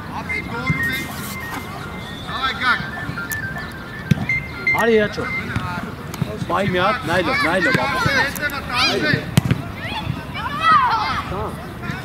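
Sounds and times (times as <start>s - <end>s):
voices shouting: 0.0s - 12.0s
thin high tune: 0.2s - 5.6s.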